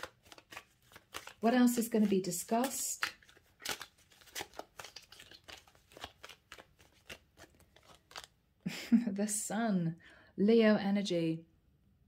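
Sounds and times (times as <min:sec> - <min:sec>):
cards shuffling: 0:00.0 - 0:08.4.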